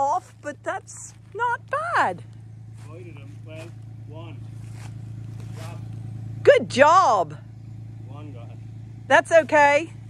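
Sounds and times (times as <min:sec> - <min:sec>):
excavator engine idling: 0:00.0 - 0:10.0.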